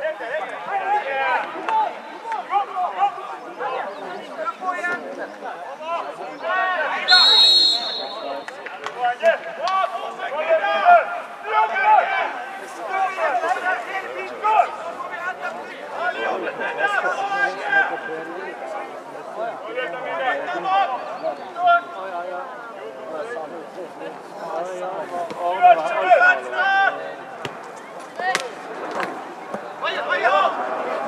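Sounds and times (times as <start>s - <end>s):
people shouting: 7.1s - 8.4s
high wavering whistle blast: 7.1s - 8.5s.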